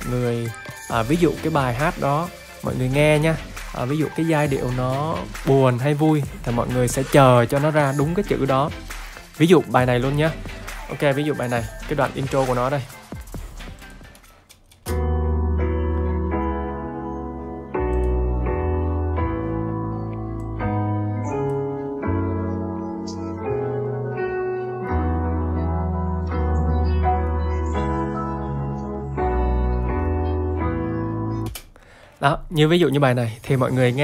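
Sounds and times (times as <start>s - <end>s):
upbeat piano chords: 0.0s - 14.2s, 14.9s - 33.2s.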